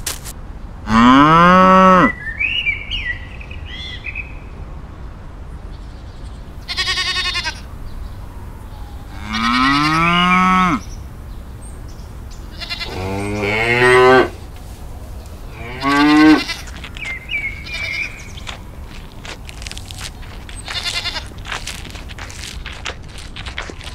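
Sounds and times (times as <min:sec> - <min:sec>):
cattle mooing: 0:00.9 - 0:02.1, 0:08.6 - 0:10.9, 0:12.4 - 0:19.2.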